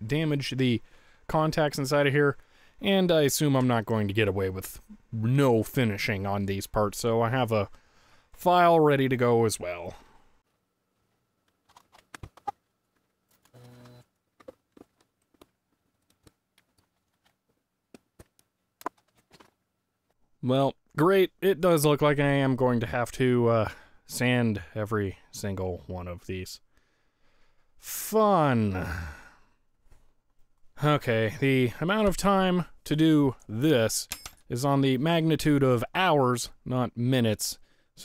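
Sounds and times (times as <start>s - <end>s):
man talking: 0.0s - 7.7s, 8.4s - 10.0s, 20.4s - 26.6s, 27.8s - 29.1s, 30.8s - 37.6s.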